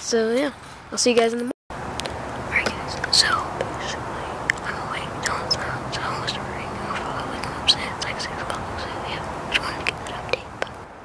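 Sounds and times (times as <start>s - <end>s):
background hiss: 1.8s - 11.0s
person whispering: 2.5s - 10.8s
faint clicks: 4.5s - 5.4s.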